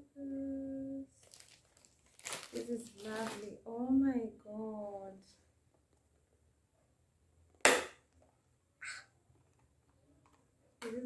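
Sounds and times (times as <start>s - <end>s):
soft rustle: 1.1s - 3.6s.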